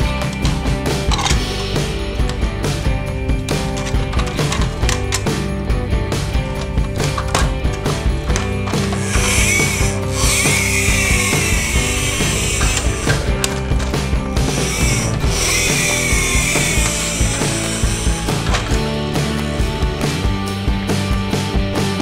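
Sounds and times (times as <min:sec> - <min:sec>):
background music: 0:00.0 - 0:22.0
toy vehicle wheels whirring: 0:08.7 - 0:18.8.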